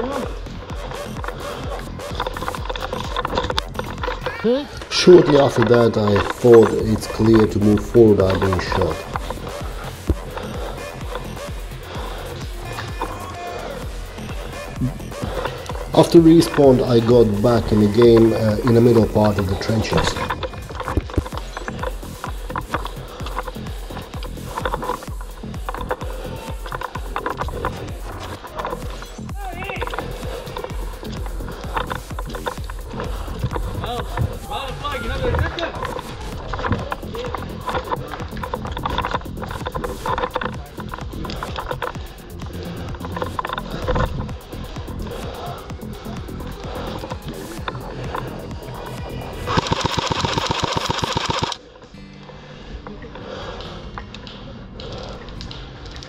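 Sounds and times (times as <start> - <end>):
background music: 0.0 - 56.0
scattered clicks: 0.4 - 51.7, 54.0 - 56.0
rapid burst of shots: 44.3 - 51.6.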